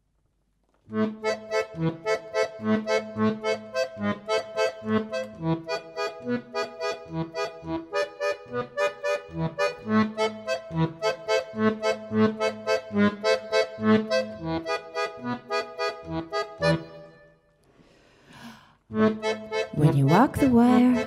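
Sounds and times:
piano accordion pulsing chords: 0.9 - 17.4, 18.9 - 21.0.

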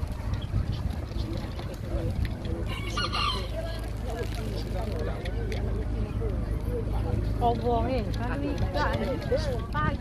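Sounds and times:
faint background voices: 0.0 - 10.0
rooster crowing: 2.7 - 3.5.

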